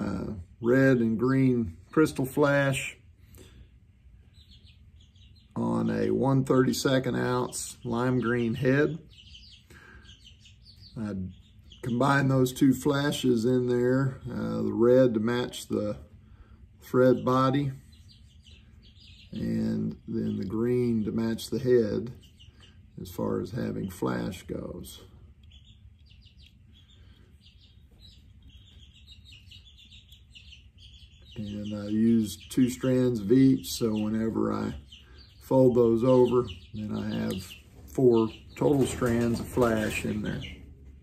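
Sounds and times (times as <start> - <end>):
chicks peeping: 0.0 - 41.0.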